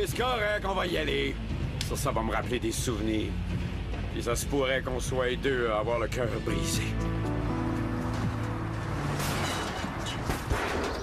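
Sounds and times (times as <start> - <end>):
background music held chord: 0.0 - 9.5.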